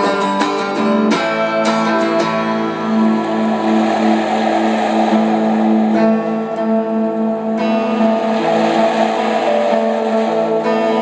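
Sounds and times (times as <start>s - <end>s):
guitar sustained chord drone: 0.0s - 11.0s
hissy wash: 1.9s - 11.0s
pulsing low note: 2.2s - 11.0s.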